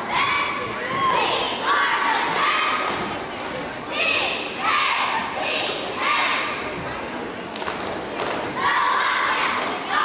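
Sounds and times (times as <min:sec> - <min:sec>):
cheerleaders shouting a cheer: 0:00.0 - 0:06.7, 0:08.3 - 0:10.0.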